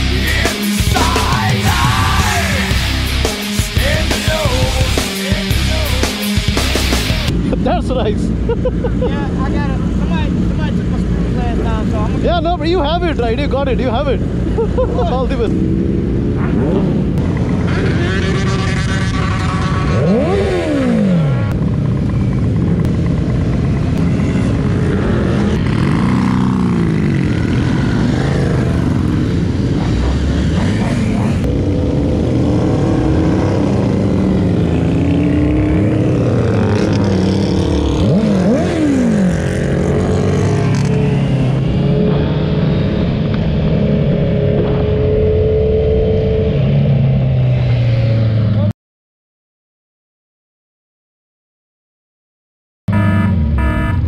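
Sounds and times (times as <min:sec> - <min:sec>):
motorcycle engines revving: 0:00.0 - 0:48.7, 0:52.9 - 0:54.0
motorcycles passing by: 0:00.0 - 0:48.7, 0:52.9 - 0:54.0.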